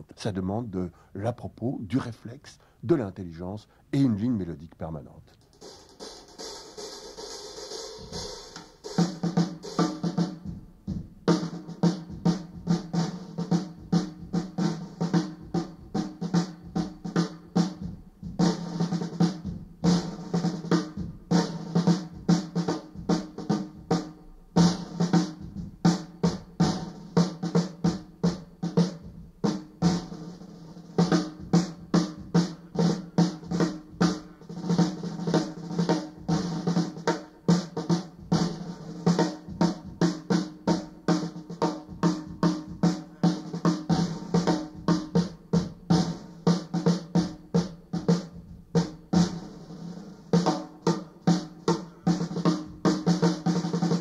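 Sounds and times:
jazz drum kit playing: 0:05.4 - 0:54.0.

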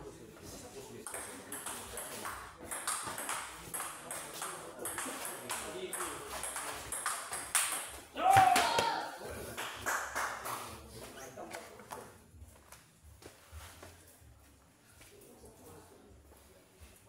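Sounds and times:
loud shout: 0:08.2 - 0:09.2.

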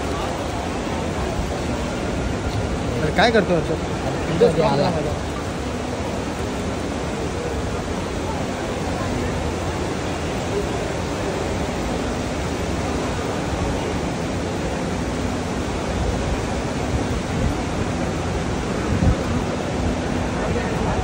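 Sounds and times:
airport background roar: 0:00.0 - 0:21.0.

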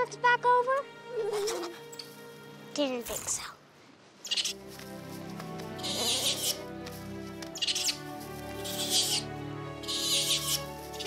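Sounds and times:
gentle background music: 0:00.0 - 0:11.0
high scratchy chittering calls: 0:04.2 - 0:04.6, 0:05.8 - 0:06.7, 0:07.6 - 0:11.0.

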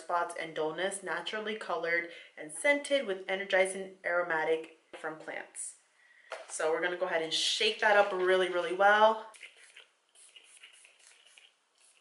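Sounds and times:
spray bottle liquid swishing: 0:09.3 - 0:12.0
spritz of face mist: 0:09.4 - 0:12.0.

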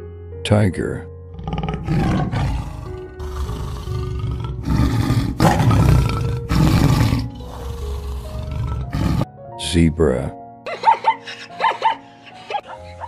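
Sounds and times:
background music: 0:00.0 - 0:13.0
tiger roaring and growling: 0:01.3 - 0:09.3.

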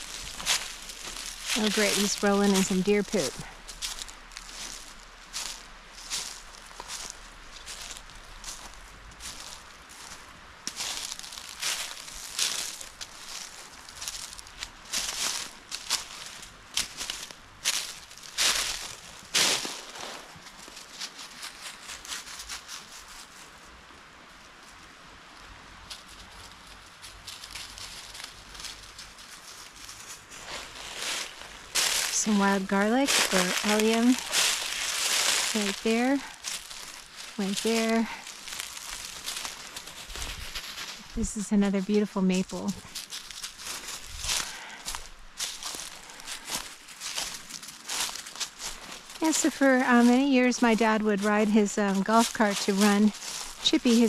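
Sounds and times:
footsteps on dry leaves: 0:00.0 - 0:23.7, 0:25.9 - 0:54.0.

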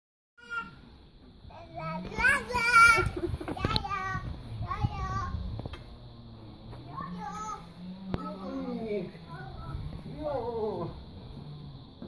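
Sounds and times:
child squealing and laughing: 0:02.4 - 0:03.8.

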